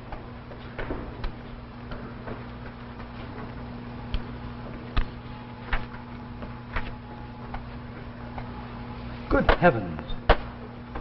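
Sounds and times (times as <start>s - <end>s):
steady low hum and hiss: 0.0s - 11.0s.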